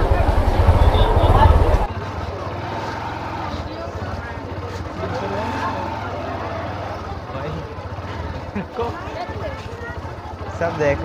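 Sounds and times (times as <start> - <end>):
wind buffeting microphone: 0.0 - 1.9
crowd voices: 0.0 - 11.0
scooter engine hum: 0.0 - 11.0.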